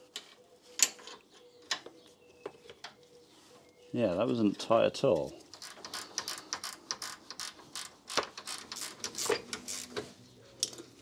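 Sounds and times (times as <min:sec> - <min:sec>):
hand ratchet clicking: 0:05.5 - 0:10.0.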